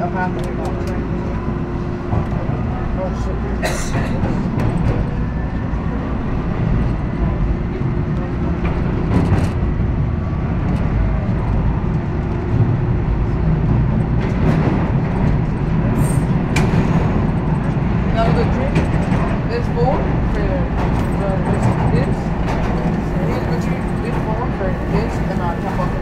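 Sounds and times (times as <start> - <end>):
subway wheels rumbling on rails: 0.0 - 26.0.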